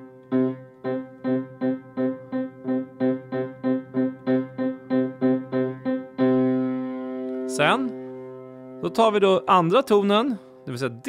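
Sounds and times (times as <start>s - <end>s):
piano chord ringing: 0.0s - 11.0s
piano repeated notes: 0.0s - 11.0s.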